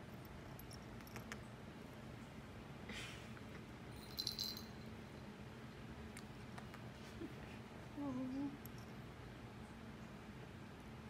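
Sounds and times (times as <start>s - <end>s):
metal collar tag jingling: 4.0s - 5.0s.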